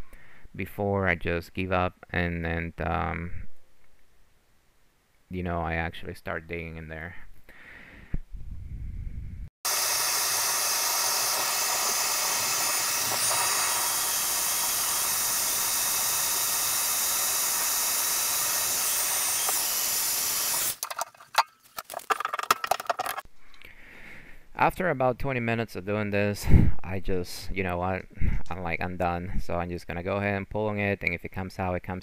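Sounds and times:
heat gun hissing: 0:09.6 - 0:20.9.

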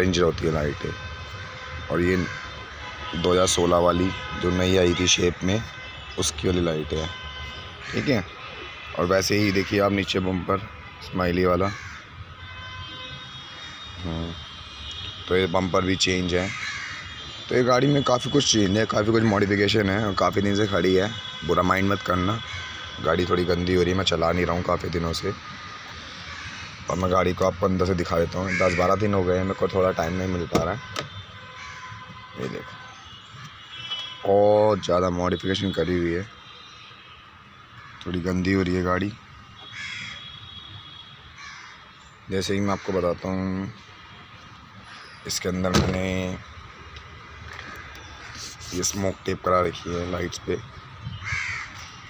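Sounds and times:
harsh bird call: 0:16.4 - 0:17.7, 0:28.4 - 0:29.2.

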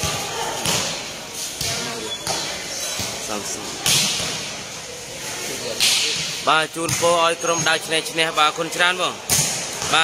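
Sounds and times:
volleyball struck by hand: 0:03.8 - 0:04.5, 0:09.3 - 0:10.0.

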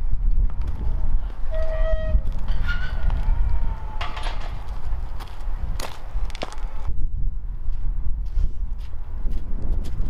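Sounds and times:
wind buffeting microphone: 0:00.0 - 0:10.0
high squeaky tones: 0:01.5 - 0:03.4.

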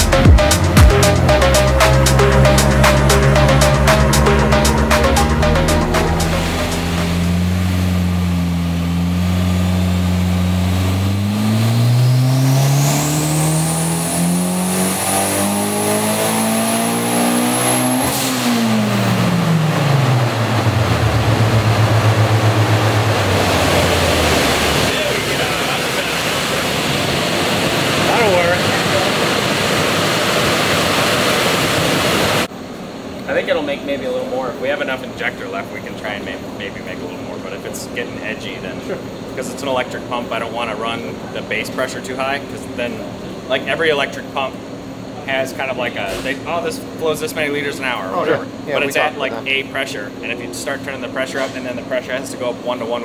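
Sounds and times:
rushing noise: 0:00.0 - 0:09.0, 0:11.2 - 0:32.5
car engine revving: 0:00.0 - 0:32.5.

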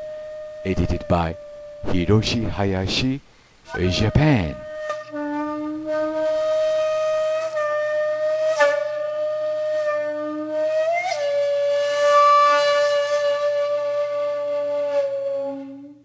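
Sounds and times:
flute-like wind instrument: 0:00.0 - 0:03.0, 0:03.7 - 0:16.0.

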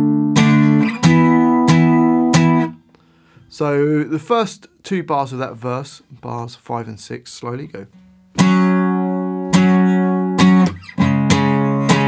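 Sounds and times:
acoustic guitar strums ringing: 0:00.0 - 0:03.5, 0:07.9 - 0:12.0.

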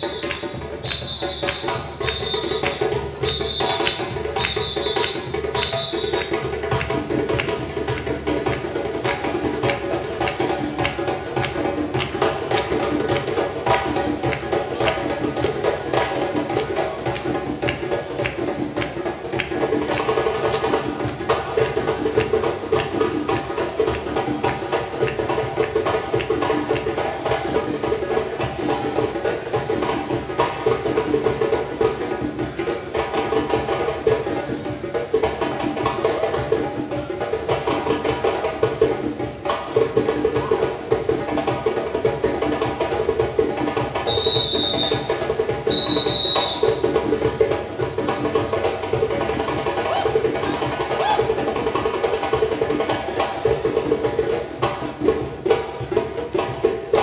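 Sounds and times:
whistle blasts: 0:00.0 - 0:06.5, 0:44.1 - 0:46.9
djembe hand drumming: 0:00.0 - 0:57.0
other percussion: 0:00.0 - 0:57.0.

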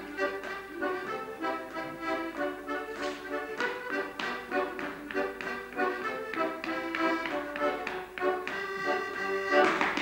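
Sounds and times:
accordion dance tune: 0:00.0 - 0:10.0
shoes tapping on hard floor: 0:00.0 - 0:10.0.

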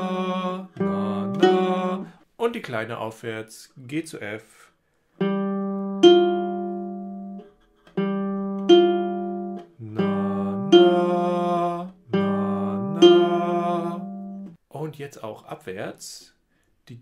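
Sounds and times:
classical guitar notes: 0:00.0 - 0:02.1, 0:05.2 - 0:14.6
man singing: 0:00.0 - 0:02.2, 0:09.8 - 0:14.2.

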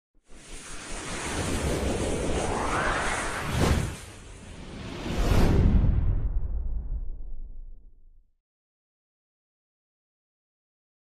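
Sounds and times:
whoosh sound effect: 0:00.3 - 0:06.5.

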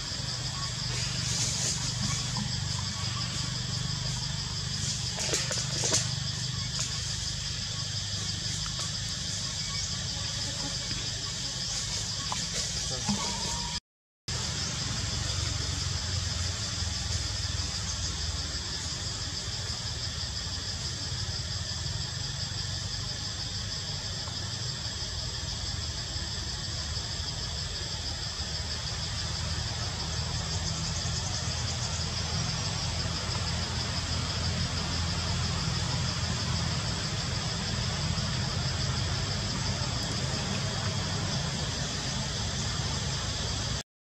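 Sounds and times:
low motor rumble: 0:00.0 - 0:13.8
high-pitched drone: 0:13.0 - 0:13.8.

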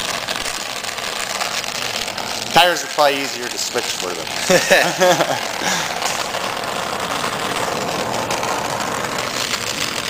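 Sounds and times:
welding torch flame hissing: 0:00.0 - 0:10.0.

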